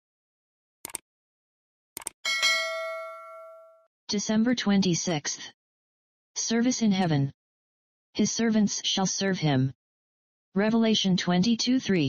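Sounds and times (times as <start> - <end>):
bright bell ding: 2.3 - 3.8.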